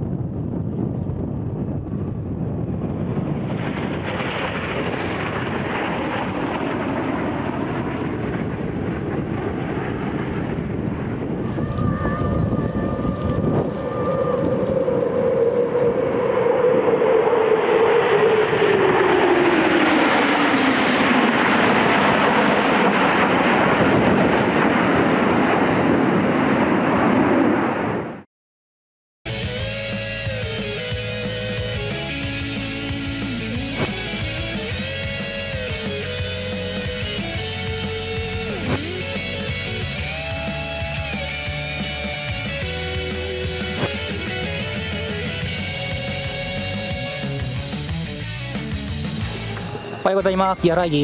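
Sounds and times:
fighter jets passing with whine: 0:00.0 - 0:28.3, 0:29.3 - 0:51.0
jet aircraft flying over: 0:00.0 - 0:28.3, 0:29.3 - 0:51.0.

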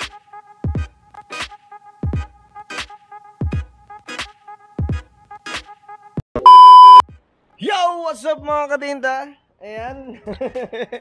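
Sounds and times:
loud electronic beep: 0:06.4 - 0:07.0.

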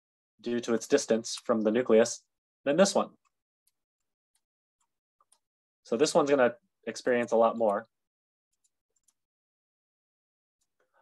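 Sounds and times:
computer mouse clicks: 0:08.5 - 0:09.2.

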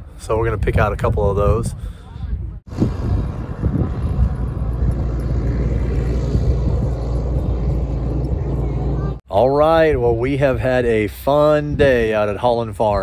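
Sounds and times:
outdoor noise: 0:00.0 - 0:13.0
tractor engine running: 0:02.7 - 0:09.2.

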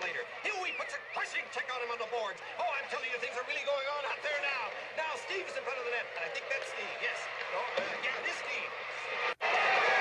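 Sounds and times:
sports commentary: 0:00.0 - 0:09.4.

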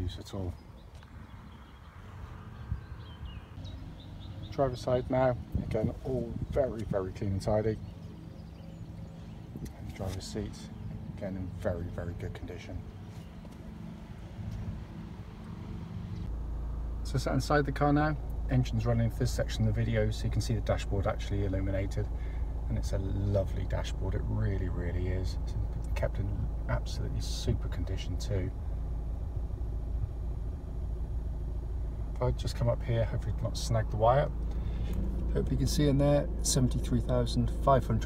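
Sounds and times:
diesel engine idling: 0:00.0 - 0:38.0.

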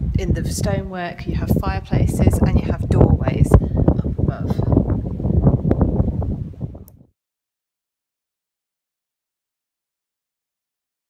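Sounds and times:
wind buffeting microphone: 0:00.0 - 0:07.1.

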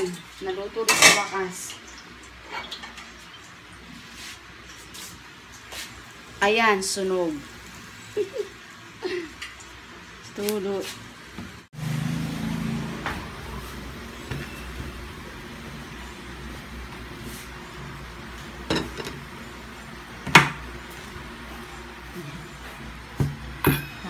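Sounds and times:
low steady hum: 0:13.0 - 0:24.0.

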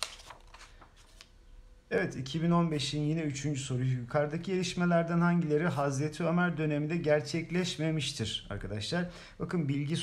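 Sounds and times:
paper rustling: 0:00.0 - 0:01.3.

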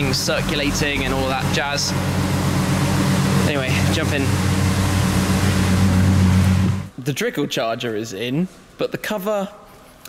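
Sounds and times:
car engine running at low revs: 0:00.0 - 0:06.9.

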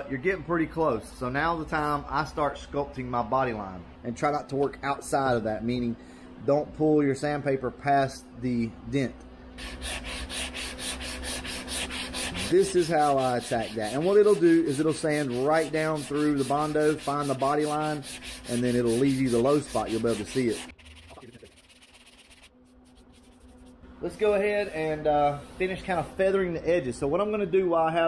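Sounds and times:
faint steady hum: 0:00.0 - 0:28.0
sanding block rubbing: 0:09.6 - 0:23.8, 0:24.6 - 0:26.2.

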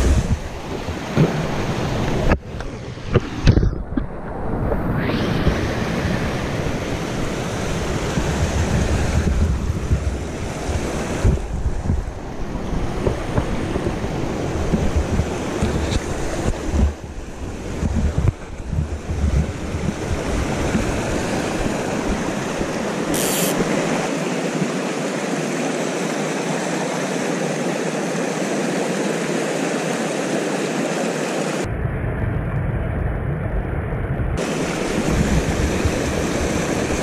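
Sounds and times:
wind buffeting microphone: 0:00.0 - 0:24.1, 0:31.6 - 0:37.0.

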